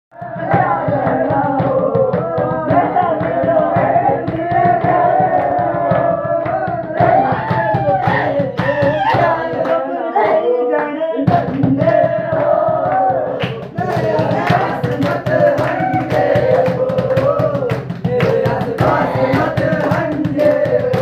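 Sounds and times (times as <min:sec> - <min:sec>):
fast drumming: 0:00.2 - 0:09.8, 0:11.2 - 0:21.0
men singing folk song: 0:00.2 - 0:21.0
hand claps: 0:00.5 - 0:09.8, 0:10.8 - 0:21.0.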